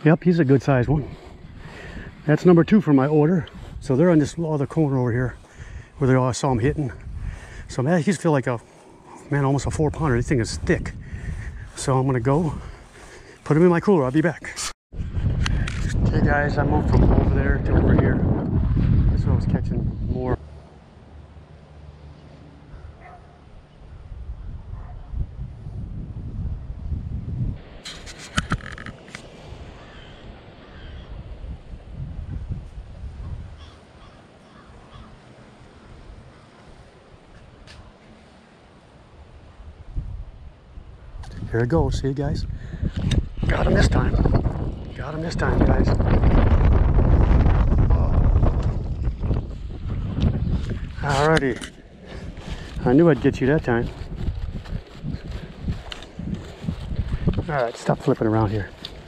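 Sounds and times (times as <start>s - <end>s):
wind rumbling on microphone: 0.0s - 20.6s, 22.6s - 59.0s
bird calls: 29.7s - 31.2s, 33.5s - 35.3s.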